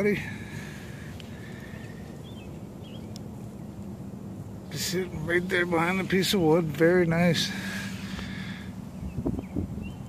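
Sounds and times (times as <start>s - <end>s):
low background hum: 0.0s - 10.0s
faint click: 3.1s - 3.3s.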